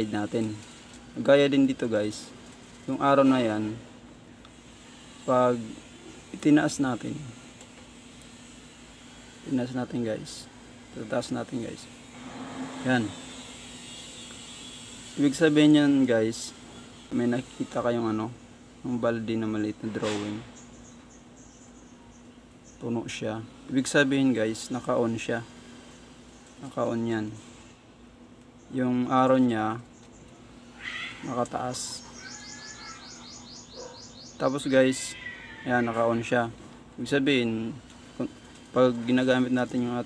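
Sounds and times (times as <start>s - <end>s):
low hum: 11.8s - 15.2s
small bird chirping rapidly: 20.5s - 22.8s, 29.8s - 35.2s.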